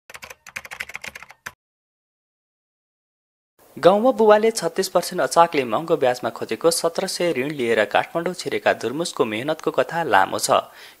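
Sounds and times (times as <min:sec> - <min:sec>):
rapid keyboard typing clicks: 0:00.1 - 0:01.6.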